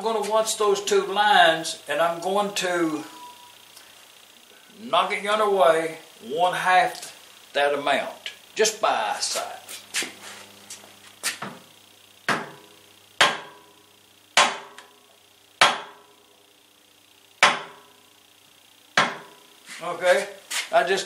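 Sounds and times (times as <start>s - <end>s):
sharp knocks on metal flywheel: 12.3s - 13.7s, 14.4s - 14.9s, 15.6s - 16.1s, 17.4s - 17.9s, 19.0s - 19.4s.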